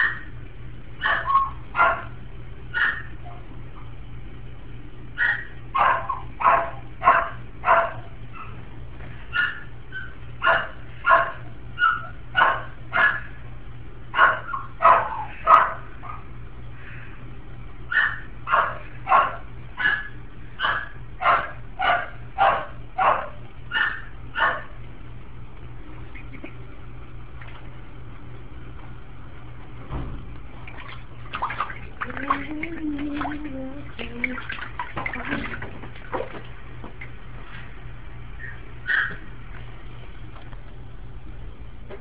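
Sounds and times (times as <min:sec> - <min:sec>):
low hum: 0:00.0 - 0:42.0.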